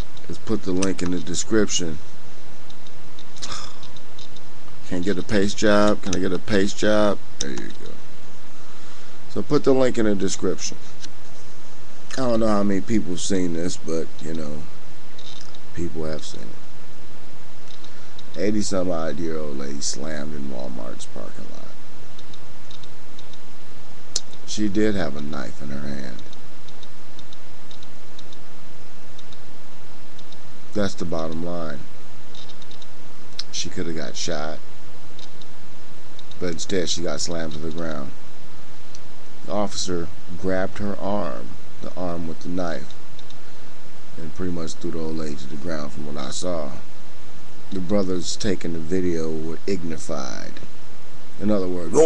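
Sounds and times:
steady hiss: 0.0 - 52.0
person speaking: 0.3 - 2.0, 3.3 - 4.0, 4.8 - 8.1, 9.3 - 11.1, 12.1 - 16.5, 18.4 - 21.8, 36.4 - 38.2, 51.4 - 52.0
person sniffing: 3.4 - 3.9
light ticking: 26.1 - 28.4, 29.1 - 29.5, 30.1 - 30.5.

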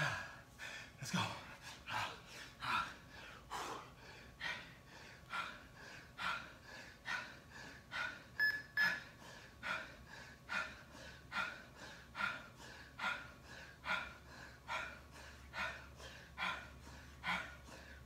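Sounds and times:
man breathing hard: 0.0 - 18.0
short high beeps: 8.4 - 9.0.

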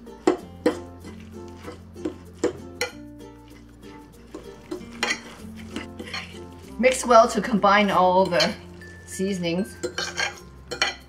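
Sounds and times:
soft background music: 0.0 - 11.0
metal utensil scraping ceramic bowl: 0.2 - 11.0.

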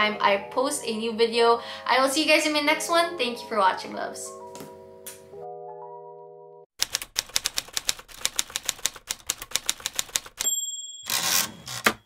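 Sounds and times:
typewriter keystroke clacks: 6.8 - 10.5
typewriter carriage bell ding: 10.3 - 12.0.

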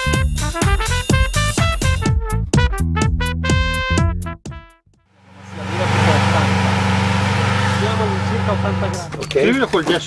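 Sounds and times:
car engine idling: 5.2 - 9.6.

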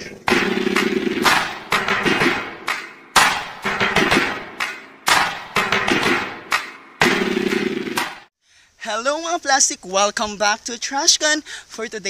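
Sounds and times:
percussive impact hits: 0.1 - 8.3.

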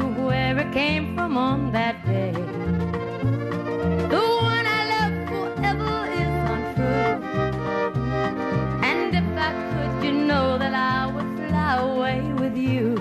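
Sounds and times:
pulsing bass line: 0.0 - 13.0
sliding bending melody: 2.5 - 12.0.

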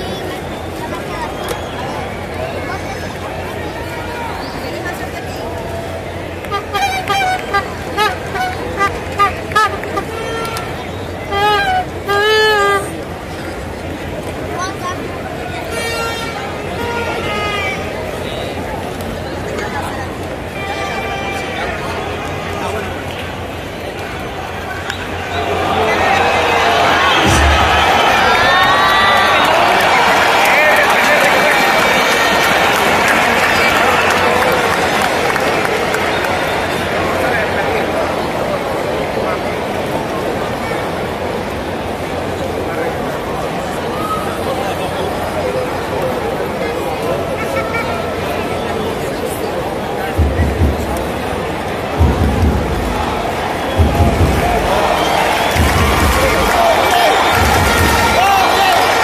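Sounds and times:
crowd hubbub: 0.0 - 59.0
fans chanting short calls: 24.5 - 32.4, 50.2 - 59.0.

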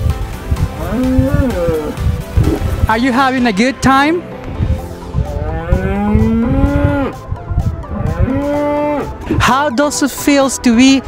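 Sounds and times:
wind rumble on microphone: 0.0 - 3.0, 4.4 - 9.5
cow mooing: 0.7 - 2.1, 5.2 - 7.2, 7.8 - 9.3.

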